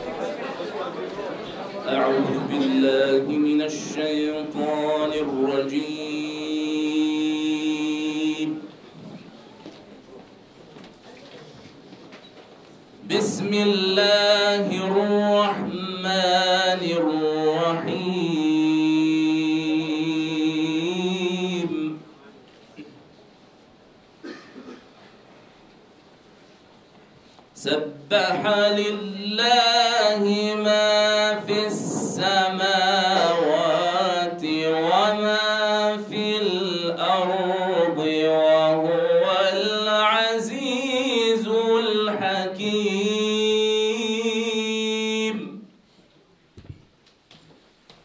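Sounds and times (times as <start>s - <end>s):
man chanting melodically: 1.8s - 8.7s, 13.0s - 22.1s, 27.6s - 45.7s.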